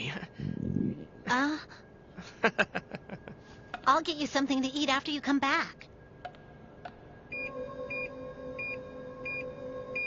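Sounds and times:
electronic hum: 0:07.0 - 0:10.0.

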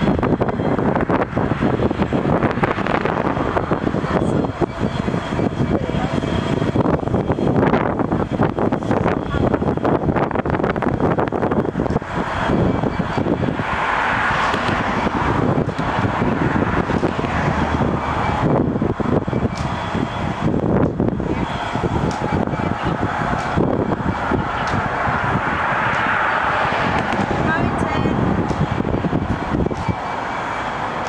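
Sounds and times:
diesel locomotive engine running: 0:00.0 - 0:31.0.

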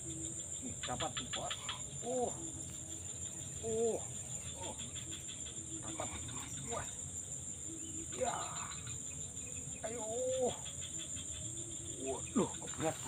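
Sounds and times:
insects trilling: 0:00.0 - 0:13.0.

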